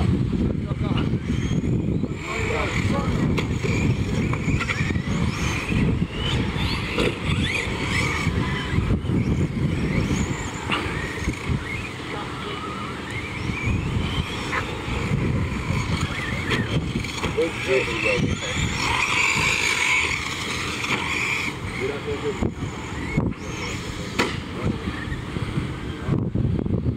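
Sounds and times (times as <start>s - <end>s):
rc truck electric motor whining: 0.6s - 26.2s.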